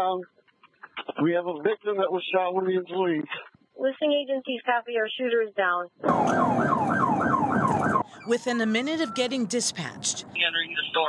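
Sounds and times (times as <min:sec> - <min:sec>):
police siren yelping: 0:06.0 - 0:09.6
road noise: 0:06.1 - 0:11.0.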